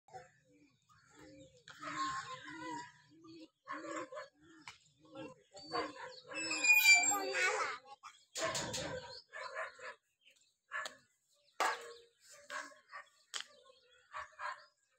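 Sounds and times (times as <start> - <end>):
high chirping calls: 5.6 - 7.6.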